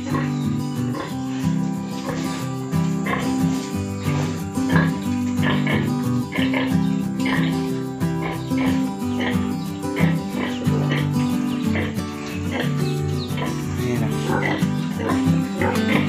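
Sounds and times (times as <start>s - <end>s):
piglets squealing: 0.0s - 1.4s, 2.0s - 16.0s
background music with low notes: 0.0s - 16.0s.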